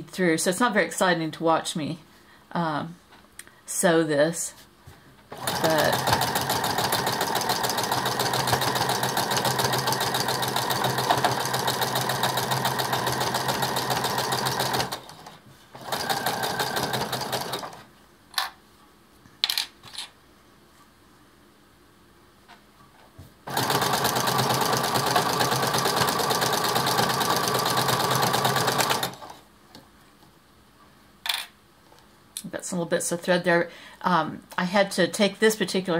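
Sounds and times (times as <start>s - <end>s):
sewing machine stitching: 5.3s - 17.9s, 23.5s - 29.4s.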